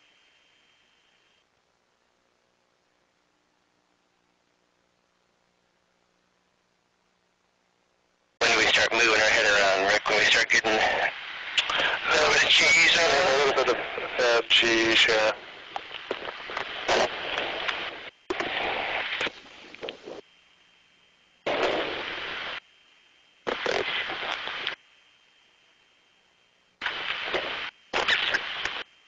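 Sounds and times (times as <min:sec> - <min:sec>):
voices over radio: 0:08.4 - 0:19.3, 0:23.5 - 0:24.8, 0:26.8 - 0:28.8.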